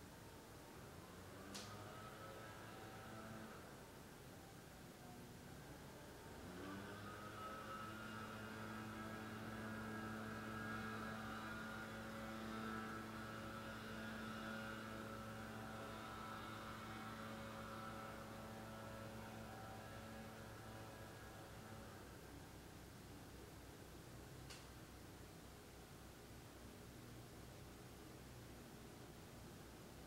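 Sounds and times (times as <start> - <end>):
faint mechanical hum: 0.0 - 30.0.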